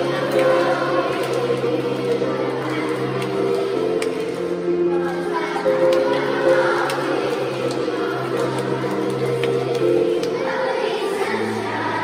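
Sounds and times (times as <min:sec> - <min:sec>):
children's choir singing: 0:00.0 - 0:12.0
piano accompaniment: 0:00.0 - 0:12.0
sharp hand claps: 0:00.3 - 0:04.5, 0:05.8 - 0:10.6.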